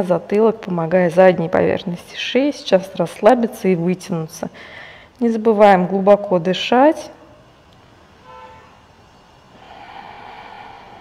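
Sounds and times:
soft breath out: 4.6s - 5.1s, 9.6s - 11.0s.

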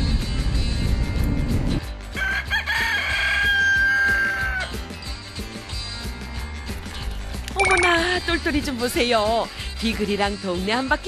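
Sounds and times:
rooster crowing: 2.2s - 4.8s.

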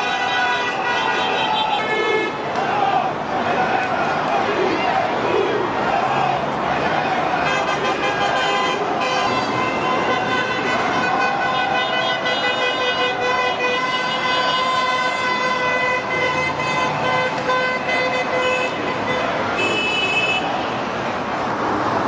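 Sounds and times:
vehicle horn long blast: 0.0s - 2.3s, 7.4s - 20.5s
motorway traffic noise: 0.0s - 22.0s.

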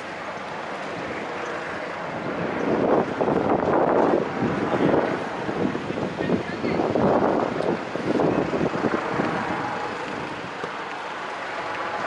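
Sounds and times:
street traffic: 0.0s - 12.0s
wind buffeting microphone: 0.0s - 12.0s.

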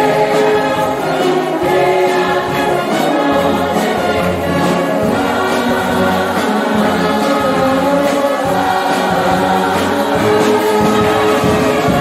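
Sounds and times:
brass band playing: 0.0s - 12.0s
choir singing: 0.0s - 12.0s.

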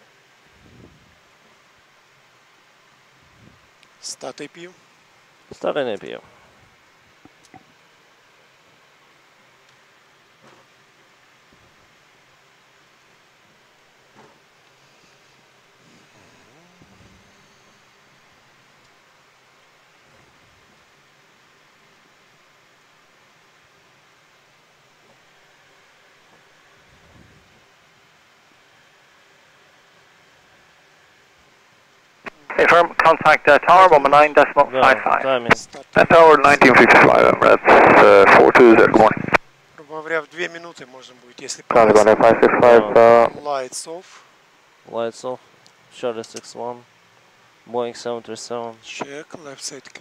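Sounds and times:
steady background hiss: 0.0s - 50.0s.

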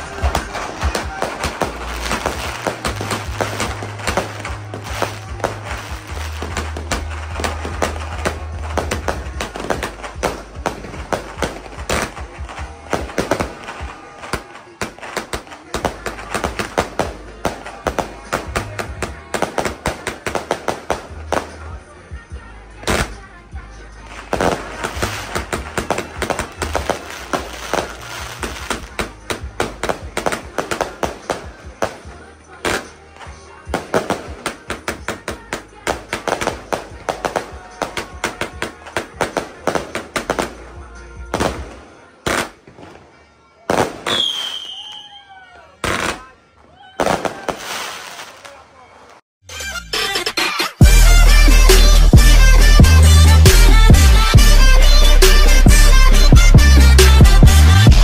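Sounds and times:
fireworks cake firing bangs: 0.0s - 49.2s, 50.8s - 58.0s.

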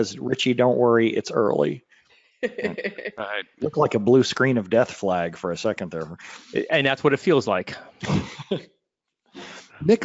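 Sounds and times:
person speaking: 0.0s - 1.8s, 2.4s - 8.6s, 9.4s - 10.0s
throaty vocal noise: 2.6s - 4.5s
person breathing: 6.2s - 6.6s, 9.4s - 9.8s.

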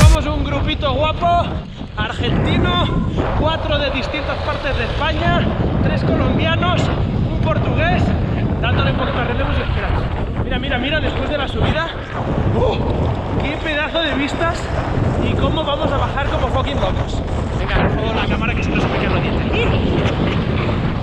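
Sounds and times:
man talking: 0.0s - 12.0s, 12.6s - 20.3s
wind buffeting microphone: 0.0s - 21.0s.

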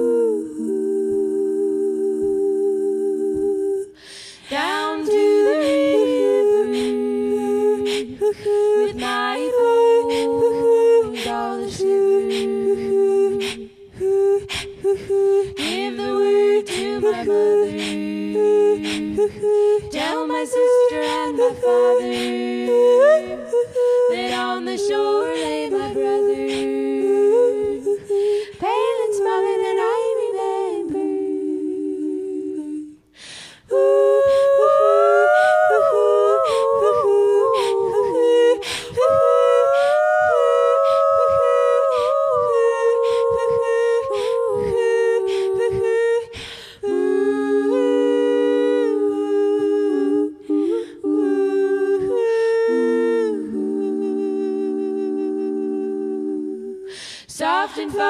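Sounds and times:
women singing a cappella harmony: 0.0s - 58.0s
singer breathing in: 4.0s - 4.5s, 33.0s - 33.7s, 46.3s - 46.8s, 56.9s - 57.3s.

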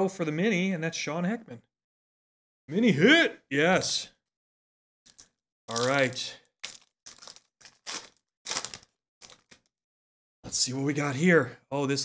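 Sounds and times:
foil wrapper crinkling: 5.1s - 9.7s.

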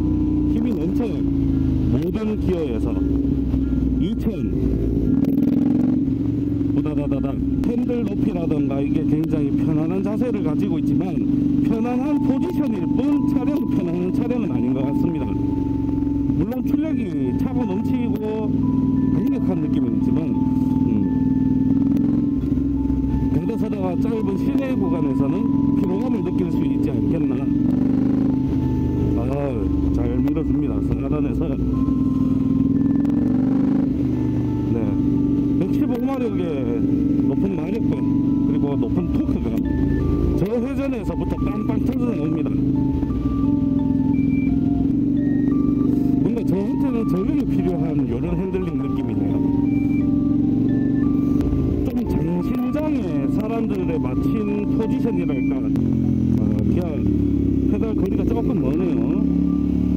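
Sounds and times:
background music melody: 0.0s - 59.9s
motorcycle engine running: 0.0s - 59.9s.

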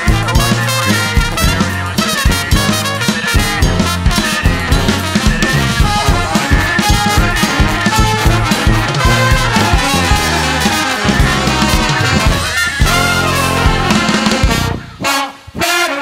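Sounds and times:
percussive beat: 0.0s - 15.0s
brass band playing funk: 0.0s - 16.0s.

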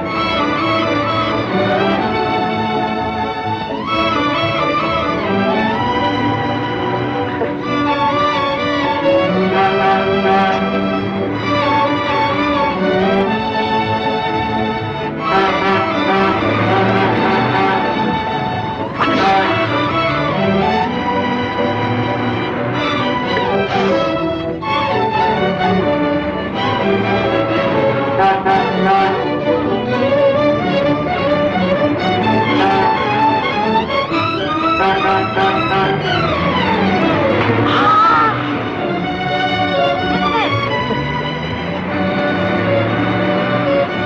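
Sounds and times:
bowed strings film score: 0.0s - 44.0s
orchestral music led by violins: 0.0s - 44.0s.

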